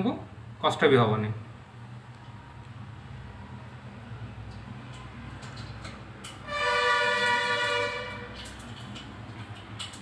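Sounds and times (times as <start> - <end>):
two-note horn: 6.4 - 8.4.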